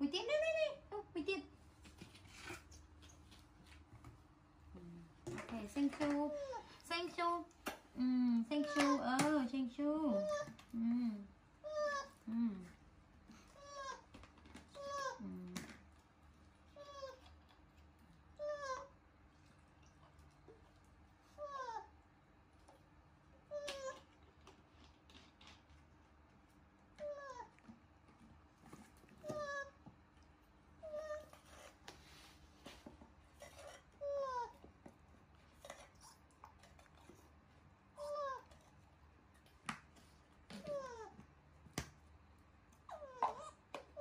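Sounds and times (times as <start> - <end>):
baby monkey whining: 11.6 - 12.2, 13.5 - 14.1, 14.7 - 15.3, 16.7 - 17.4, 18.4 - 19.0, 21.4 - 21.9, 29.2 - 29.8, 33.6 - 34.6, 38.0 - 38.6, 40.5 - 41.2, 42.9 - 44.0.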